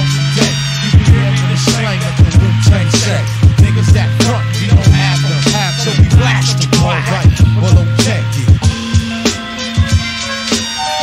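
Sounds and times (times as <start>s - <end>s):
bass notes: 0.0s - 9.3s
person rapping: 0.0s - 10.7s
hip hop drum beat: 0.0s - 11.0s.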